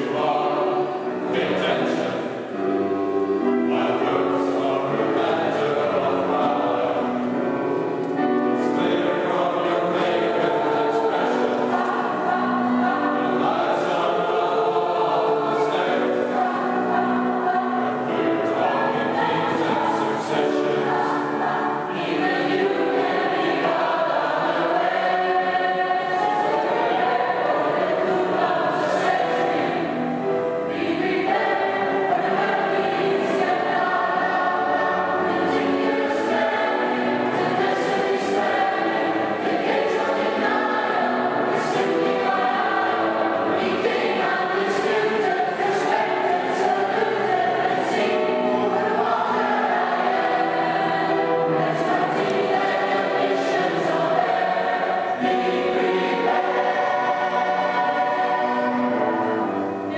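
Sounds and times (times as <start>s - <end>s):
mixed choir singing in harmony: 0.0s - 59.9s.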